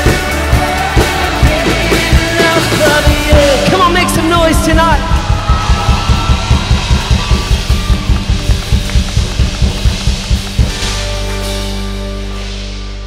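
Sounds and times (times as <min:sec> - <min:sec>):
fast pounding drum beat: 0:00.0 - 0:11.5
live rock band playing: 0:00.0 - 0:13.0.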